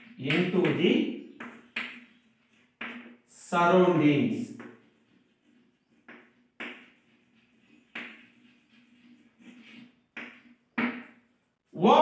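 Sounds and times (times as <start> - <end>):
chalk writing on blackboard: 0.0 - 3.3, 4.4 - 11.6.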